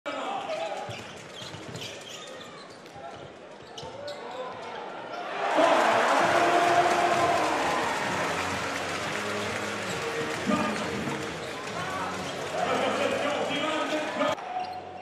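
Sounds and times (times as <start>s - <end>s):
sneakers squeaking: 0.4s - 4.8s, 9.2s - 12.9s
crowd cheering: 5.2s - 14.7s.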